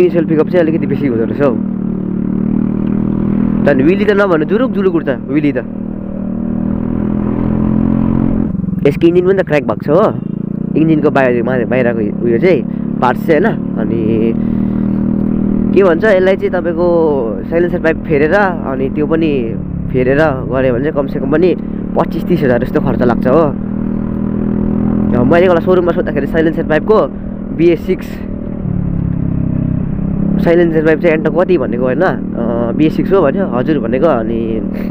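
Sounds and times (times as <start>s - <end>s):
road and wind rumble: 0.0s - 34.9s
scooter engine accelerating: 0.1s - 34.9s.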